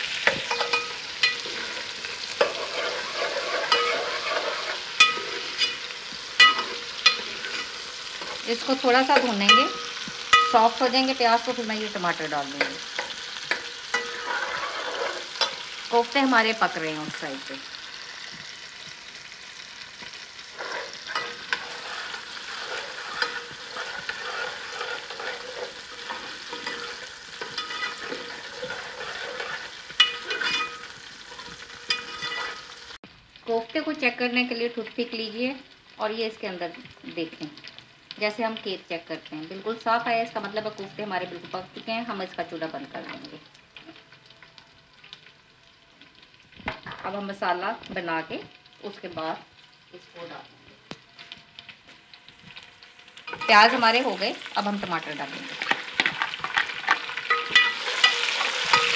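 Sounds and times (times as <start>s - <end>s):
food deep-frying in oil: 0.0s - 58.9s
onions sizzling in hot fat: 0.0s - 58.9s
ladle scraping and knocking pot: 0.2s - 8.4s, 12.6s - 15.6s, 20.6s - 32.6s
small crackles: 42.3s - 58.9s.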